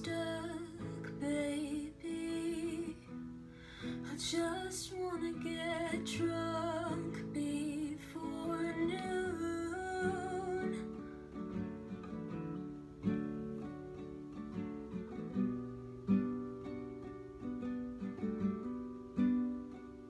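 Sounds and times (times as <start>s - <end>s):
acoustic guitar chords: 0.0s - 20.0s.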